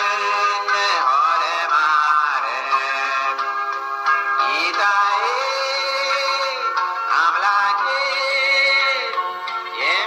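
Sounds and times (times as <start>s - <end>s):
singing voice holding long notes: 0.0s - 3.5s, 4.4s - 10.0s
musical accompaniment: 0.0s - 10.0s.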